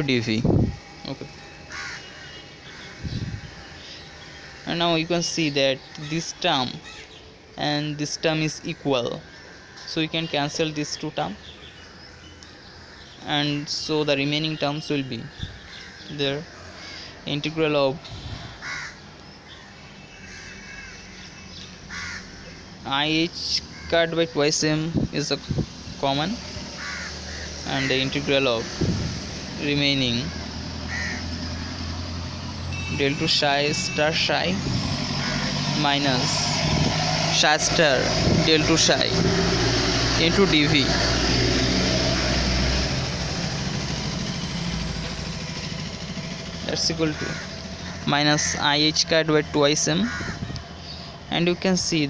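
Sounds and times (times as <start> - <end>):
low mechanical hum: 0.0 - 7.6
bird harsh call: 0.8 - 22.8, 26.3 - 32.2, 47.0 - 48.8, 50.0 - 51.3
deep rumble: 28.6 - 29.6.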